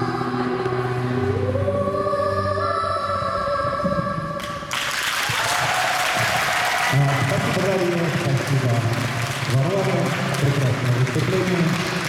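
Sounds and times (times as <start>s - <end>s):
music: 0.0s - 12.0s
audience applause: 4.7s - 12.0s.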